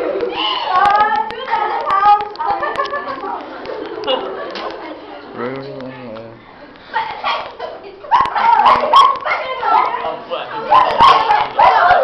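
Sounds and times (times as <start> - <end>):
girls shrieking and shouting: 10.8 - 12.0.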